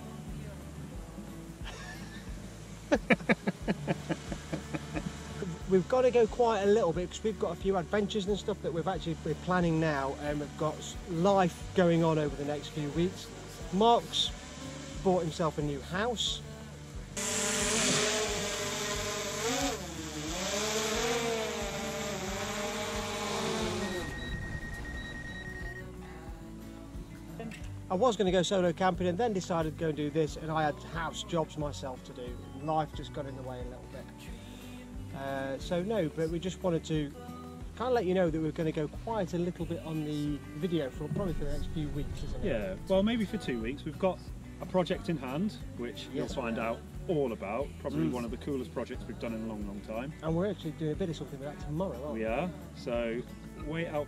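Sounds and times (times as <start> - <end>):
men laughing loudly: 1.6 - 5.6
drone propeller whine: 17.2 - 25.8.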